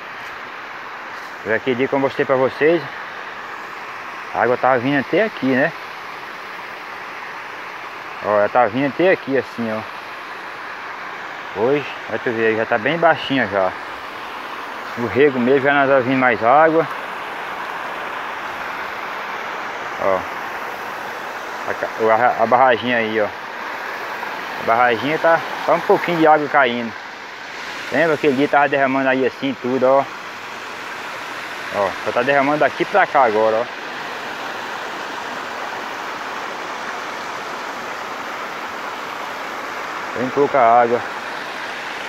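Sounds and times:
river water over stones: 0:00.0 - 0:42.0
water spilling over spillway: 0:00.0 - 0:42.0.

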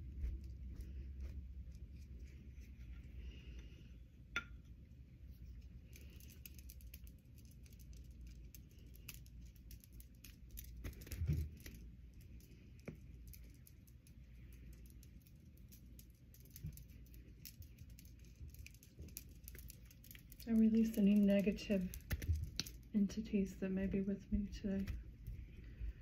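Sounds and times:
low room rumble: 0:00.0 - 0:26.0.

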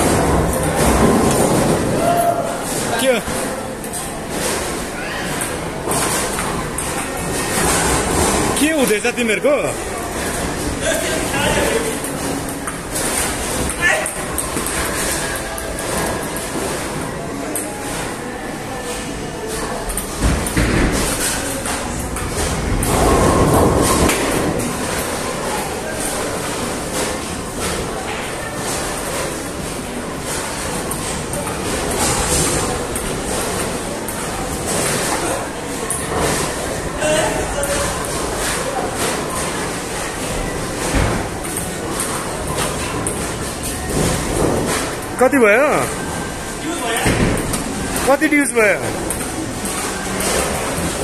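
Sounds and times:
voices in busy hall: 0:00.0 - 0:51.0.

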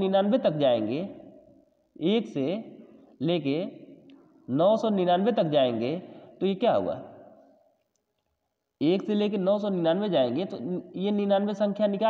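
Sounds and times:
man speaking: 0:00.0 - 0:01.2, 0:02.0 - 0:03.9, 0:04.5 - 0:07.1, 0:08.8 - 0:12.0.

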